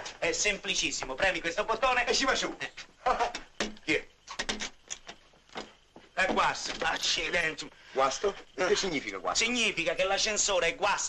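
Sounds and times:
men's voices exclaiming: 0.0 - 4.1
sharp clicks: 3.3 - 5.7.

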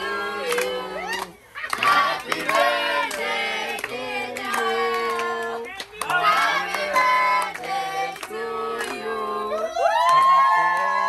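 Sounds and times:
group singing birthday song: 0.0 - 9.9
hand clapping: 0.5 - 9.0.

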